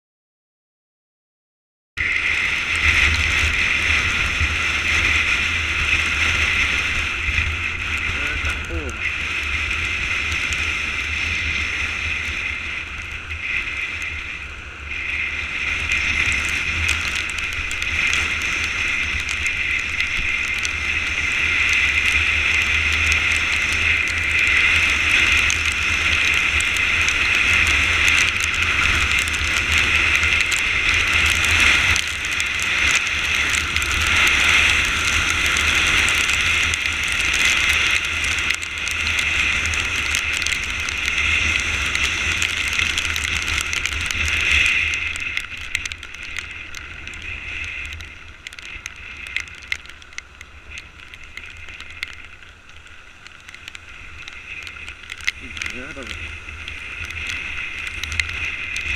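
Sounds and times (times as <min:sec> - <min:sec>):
tyres on wet asphalt: 0:02.0 - 0:58.9
wind rush: 0:02.0 - 0:58.9.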